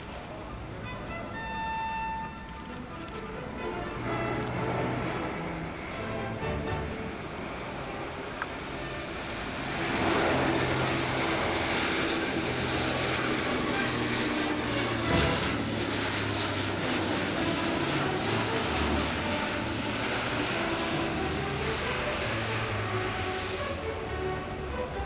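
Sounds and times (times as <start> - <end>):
turboprop engines rushing: 0.0 - 25.0.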